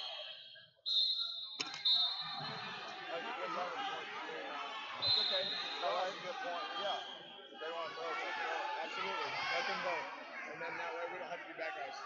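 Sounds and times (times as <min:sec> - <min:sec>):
shrill whistle blasts: 0:00.0 - 0:02.6, 0:05.0 - 0:07.6
background chatter: 0:01.6 - 0:12.0.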